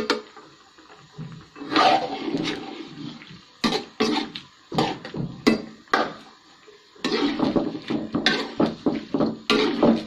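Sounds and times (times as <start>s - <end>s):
vegetables sizzling in a wok: 0.0s - 10.0s
metal spoon stirring in a wok: 1.6s - 5.8s, 7.0s - 10.0s.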